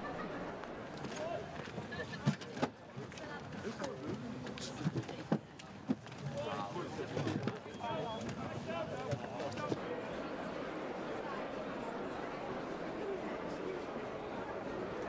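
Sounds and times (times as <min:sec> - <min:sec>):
people calling and chattering: 0:00.0 - 0:15.0.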